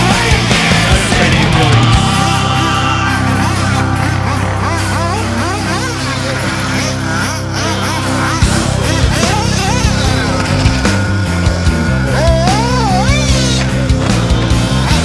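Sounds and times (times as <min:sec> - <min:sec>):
rc buggy engines revving: 0:00.0 - 0:15.0
rock music: 0:00.0 - 0:15.0.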